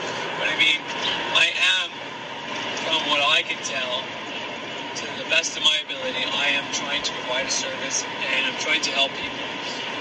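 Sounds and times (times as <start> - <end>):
man speaking: 0.4 - 2.0, 2.8 - 4.1, 5.0 - 9.9.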